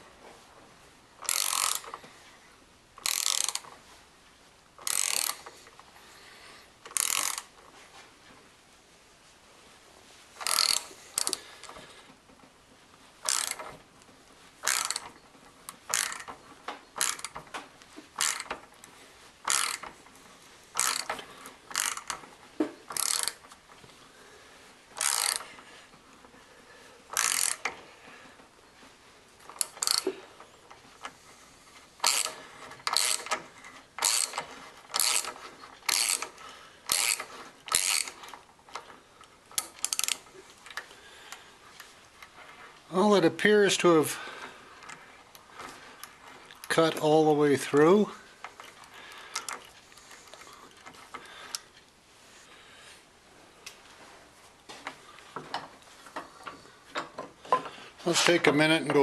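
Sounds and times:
socket ratchet clicking: 0:01.2 - 0:02.0, 0:03.0 - 0:03.8, 0:04.8 - 0:05.5, 0:06.9 - 0:07.6, 0:10.4 - 0:11.4, 0:13.2 - 0:13.7, 0:14.6 - 0:16.4, 0:17.0 - 0:17.4, 0:18.2 - 0:18.6, 0:19.4 - 0:20.0, 0:20.8 - 0:22.2, 0:22.9 - 0:23.5, 0:25.0 - 0:25.5, 0:27.1 - 0:27.8, 0:29.5 - 0:30.1, 0:32.0 - 0:33.4, 0:34.0 - 0:38.9, 0:39.6 - 0:40.8.

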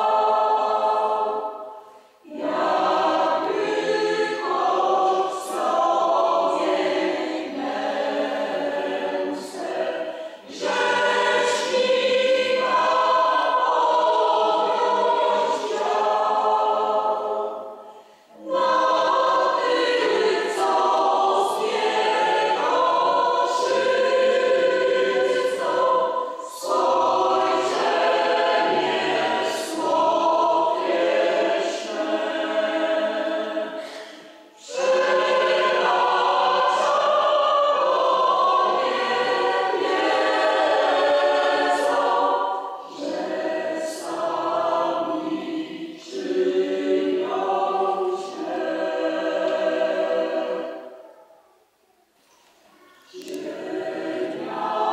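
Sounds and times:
choir singing slow sacred song: 0:00.0 - 0:54.9.

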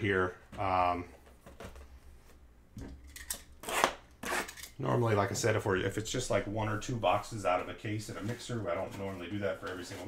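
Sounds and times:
soft scrapes: 0:07.5 - 0:10.0.

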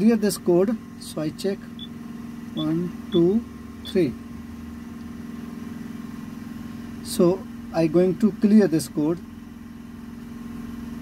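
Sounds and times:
diesel engine idling: 0:00.0 - 0:11.0.

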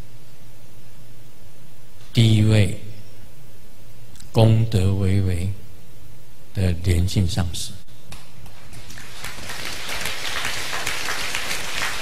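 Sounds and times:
audience applauding: 0:08.5 - 0:12.0.

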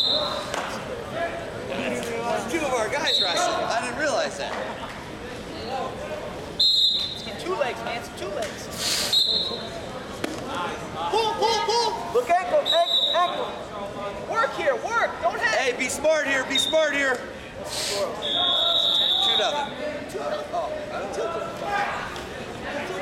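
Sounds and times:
people calling out in a hall: 0:00.0 - 0:01.6, 0:06.6 - 0:07.4, 0:10.6 - 0:13.7, 0:16.4 - 0:23.0.

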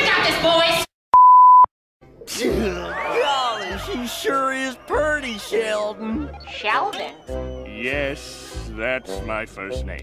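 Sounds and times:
high electronic beep: 0:01.2 - 0:01.7
music with voices: 0:03.6 - 0:10.0.

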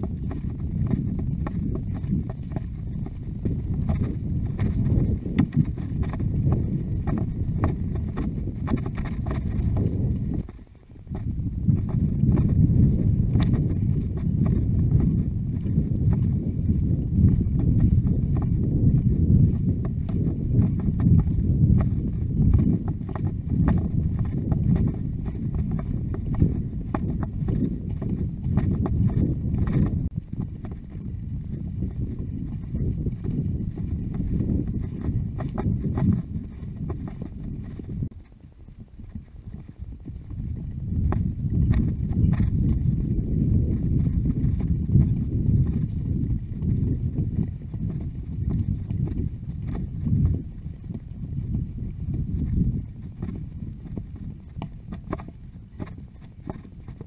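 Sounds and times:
horse hooves on grass and dirt: 0:00.0 - 0:57.0
wind rumble on microphone: 0:00.0 - 0:57.0.

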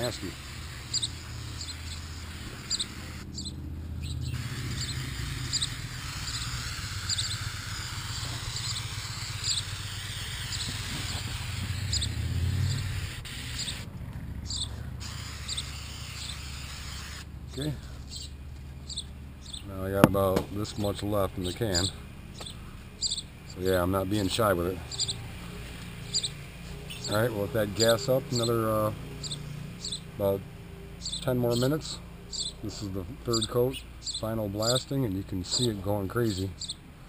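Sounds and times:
aerosol can spraying: 0:00.0 - 0:03.3, 0:04.3 - 0:13.9, 0:14.5 - 0:17.3
bird chirping: 0:00.0 - 0:36.9.

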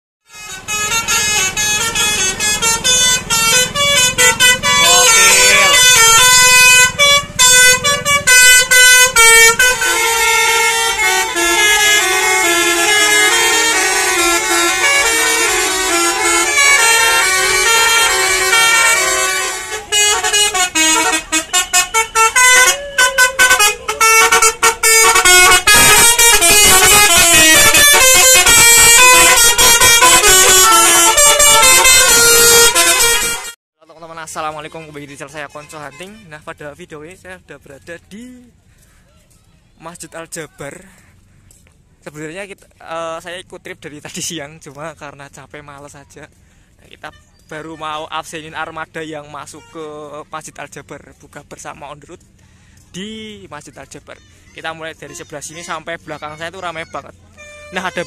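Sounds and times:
melodic bus air horns: 0:00.2 - 0:33.6, 0:57.3 - 0:58.0.

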